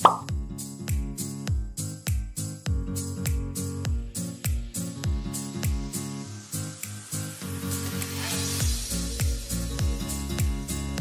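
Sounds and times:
cartoon plop: 0.0s - 0.3s
upbeat music with kick drum: 0.0s - 11.0s.

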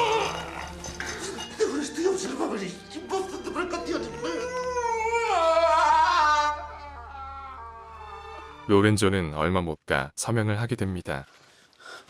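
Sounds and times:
man crying out in pain: 4.4s - 7.6s.

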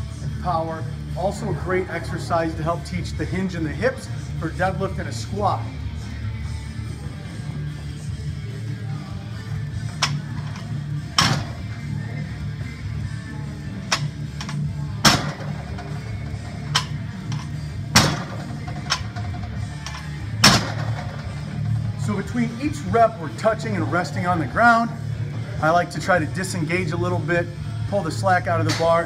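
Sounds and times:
background music: 0.0s - 29.0s.

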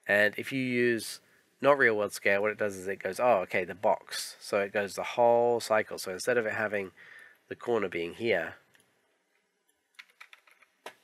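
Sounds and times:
computer keyboard keystrokes: 10.0s - 11.0s.

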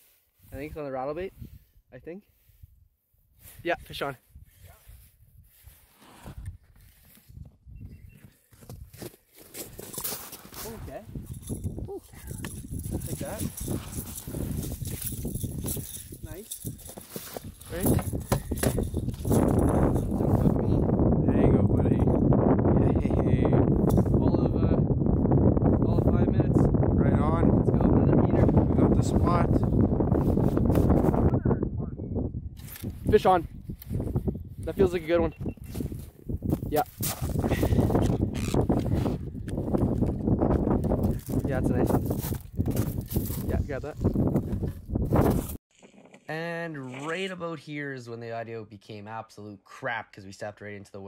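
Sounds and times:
wind buffeting microphone: 1.3s - 9.0s, 10.6s - 45.6s.

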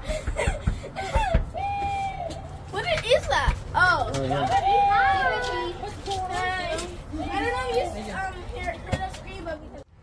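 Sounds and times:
children calling out: 1.1s - 8.2s.

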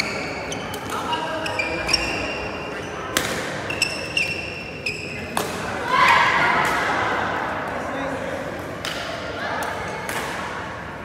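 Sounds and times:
shoes squeaking on court floor: 0.0s - 5.5s
background chatter: 0.0s - 11.0s.

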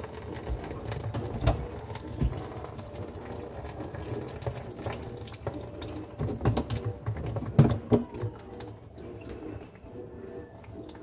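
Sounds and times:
drips onto plastic tray: 0.0s - 11.0s
water running down drainpipes: 0.0s - 11.0s.

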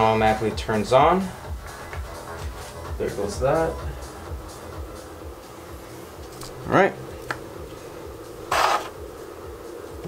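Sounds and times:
small cooling fan humming: 0.0s - 10.0s
scrape of parts handled: 8.5s - 9.0s.

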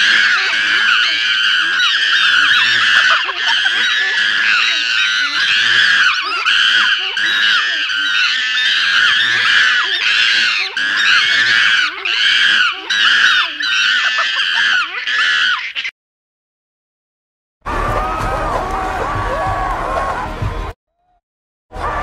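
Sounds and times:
creature screeching cries: 0.0s - 15.9s, 17.7s - 20.3s, 21.8s - 22.0s.

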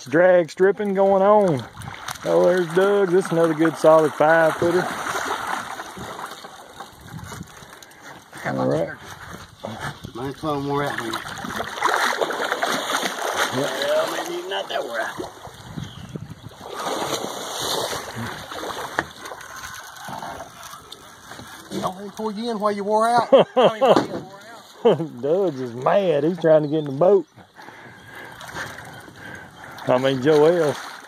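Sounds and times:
fish splashing in water: 1.4s - 8.3s, 10.8s - 15.8s, 16.4s - 22.2s, 28.1s - 31.0s.

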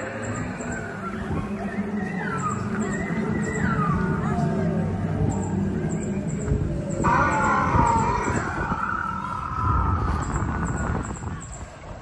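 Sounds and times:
dinosaur call from loudspeaker: 7.0s - 11.0s.

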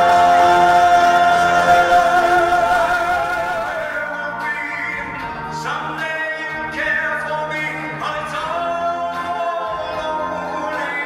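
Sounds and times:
man singing a long note: 0.0s - 5.1s
backing music: 0.0s - 11.0s.

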